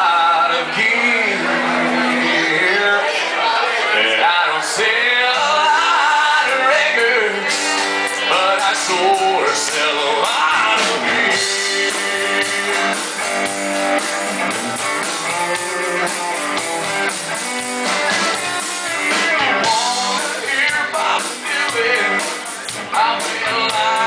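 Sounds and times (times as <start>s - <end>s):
country-rock band playing: 0.0s - 24.0s.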